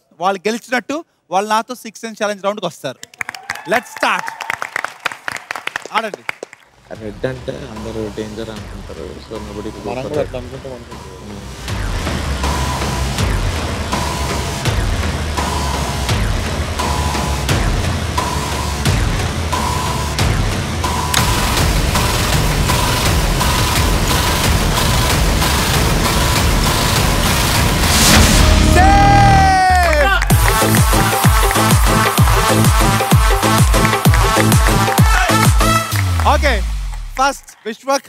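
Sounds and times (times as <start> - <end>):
tense game show music: 6.7 - 37.5
upbeat dance music: 21.1 - 37.4
falling swoop sound effect: 27.8 - 30.0.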